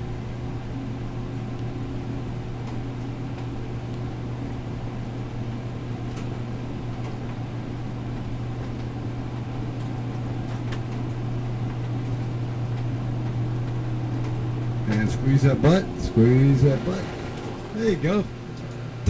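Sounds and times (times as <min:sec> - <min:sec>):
centrifuge low hum: 0:00.0 - 0:19.0.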